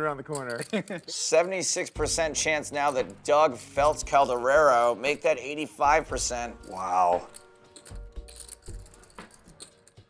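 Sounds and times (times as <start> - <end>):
faint background music: 0.0 - 10.0
poker chips clicking: 0.3 - 0.9, 6.6 - 10.0.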